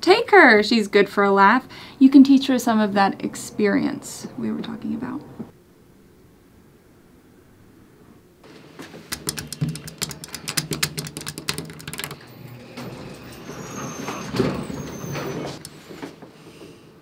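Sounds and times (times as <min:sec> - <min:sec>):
elevator low hum: 0:01.4 - 0:08.5, 0:09.3 - 0:16.1
rapid rattling clicks: 0:09.0 - 0:12.3
brief high squeals: 0:13.1 - 0:15.6.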